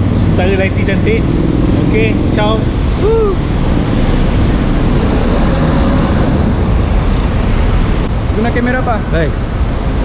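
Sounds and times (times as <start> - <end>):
bus passing: 0.0 - 10.0
cars passing: 0.0 - 10.0
city street traffic rumble: 0.0 - 10.0.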